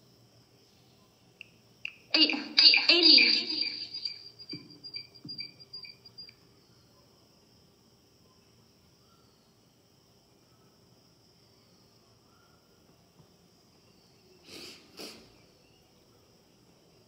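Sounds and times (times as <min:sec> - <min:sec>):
faint high chirps: 0:00.6 - 0:07.2.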